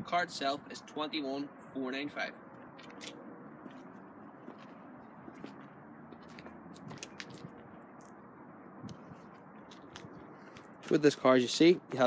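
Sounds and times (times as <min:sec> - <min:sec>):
low outdoor background hum: 0:00.0 - 0:12.0
footsteps on gritty tarmac: 0:02.6 - 0:08.3, 0:08.9 - 0:11.4.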